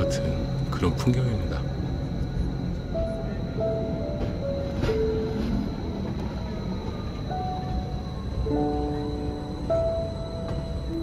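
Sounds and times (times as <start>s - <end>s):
soft background music: 0.0s - 11.0s
train running rumble: 0.0s - 11.0s.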